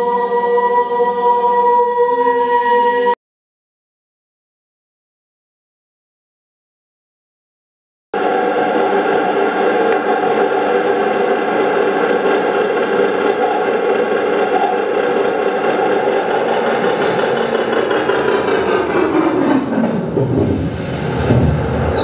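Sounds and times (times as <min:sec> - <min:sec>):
dense electronic drone: 0:08.2 - 0:22.0
high falling swish: 0:17.0 - 0:22.0.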